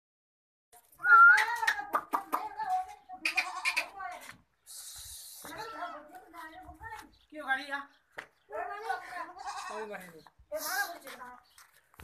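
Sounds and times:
goat bleating: 3.2s - 4.1s, 9.2s - 10.0s.

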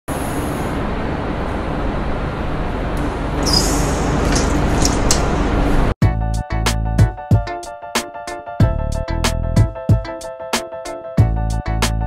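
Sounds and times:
vehicle engine and road noise: 0.1s - 6.0s.

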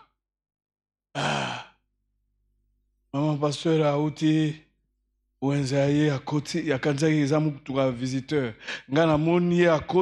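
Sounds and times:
man sighing: 1.2s - 1.8s.

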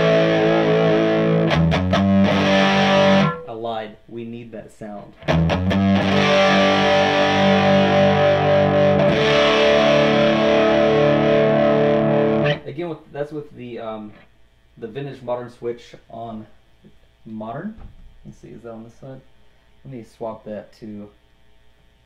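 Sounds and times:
distorted electric guitar chords: 0.0s - 3.5s, 5.2s - 12.7s
choppy guitar picking: 0.0s - 3.6s, 5.0s - 12.8s.

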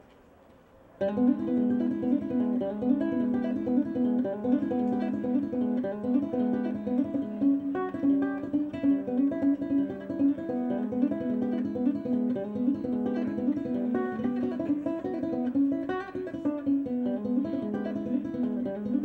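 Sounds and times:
acoustic guitar playing blues: 1.0s - 19.0s.

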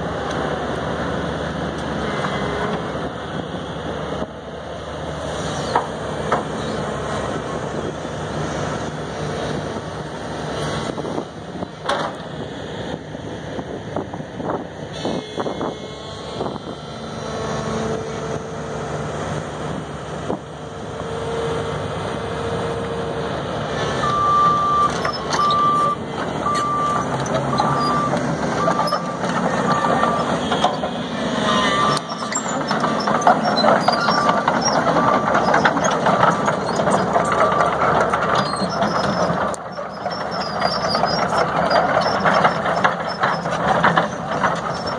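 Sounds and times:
excavator diesel engine running: 0.0s - 44.9s
travel alarm beeping: 24.0s - 30.4s, 31.4s - 32.4s.

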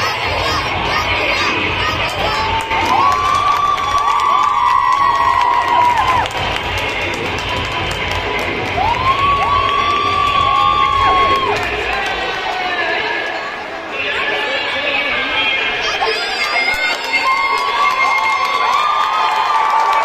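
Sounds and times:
children cheering and shouting: 0.0s - 6.4s, 8.7s - 13.1s, 15.8s - 20.0s.

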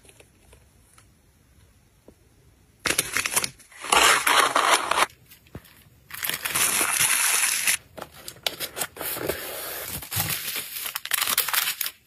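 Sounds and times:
plastic packaging crinkling: 2.9s - 12.0s.

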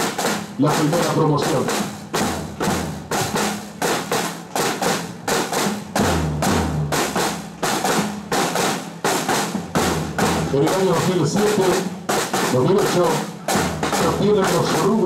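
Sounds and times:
bass drum: 0.0s - 15.0s
snare drums march beat: 0.0s - 15.0s.

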